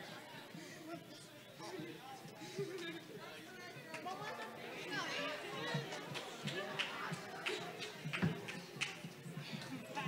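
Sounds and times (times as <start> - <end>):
indistinct chatter: 0.0 - 10.0.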